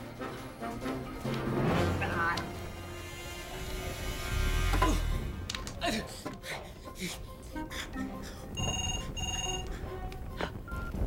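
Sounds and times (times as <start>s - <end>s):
telephone ringing electronically: 8.6s - 9.7s.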